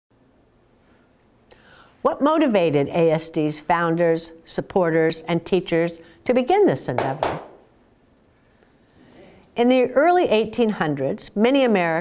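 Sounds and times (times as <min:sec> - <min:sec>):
faint room hiss: 0:00.1 - 0:12.0
soft intake of breath: 0:00.8 - 0:02.0, 0:08.3 - 0:09.6.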